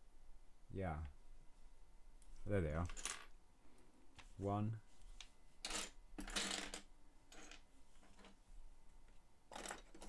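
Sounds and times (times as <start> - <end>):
plastic parts clattering: 9.5 - 10.0.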